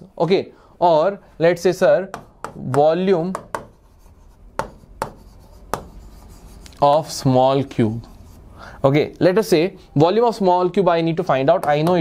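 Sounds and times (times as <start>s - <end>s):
writing tip tapping board: 2.1s - 3.8s, 4.6s - 6.0s, 11.5s - 12.0s
scratchy writing strokes on board: 2.1s - 7.2s, 8.0s - 8.5s.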